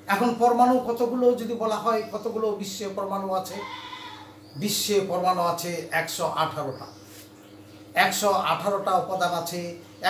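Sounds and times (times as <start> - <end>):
man speaking: 0.1 - 3.6, 8.0 - 9.8.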